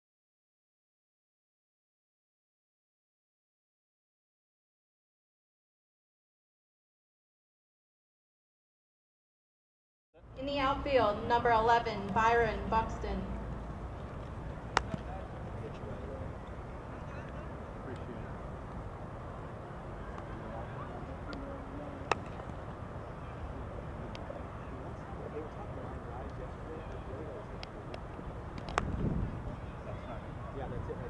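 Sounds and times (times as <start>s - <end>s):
faint distant voices: 10.2s - 31.0s
sharp crack: 14.7s - 15.1s, 22.0s - 22.5s, 28.5s - 29.0s.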